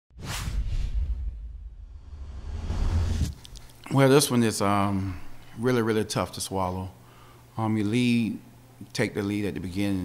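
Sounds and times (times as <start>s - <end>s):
whoosh sound effect: 0.2s - 3.6s
deep low rumble: 0.4s - 3.6s.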